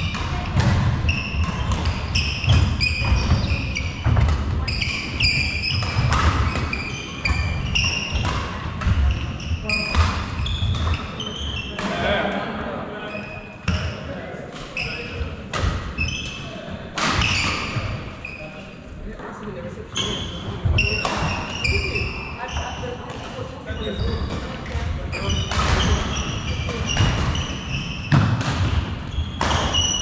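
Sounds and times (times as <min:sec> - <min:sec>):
racket striking shuttlecock: 0:00.1 - 0:03.4, 0:28.1 - 0:30.0.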